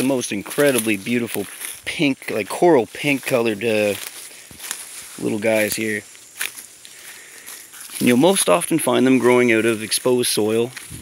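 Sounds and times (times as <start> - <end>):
footsteps in dry leaves: 0.0 - 11.0
sharp leaf crunch: 0.0 - 11.0.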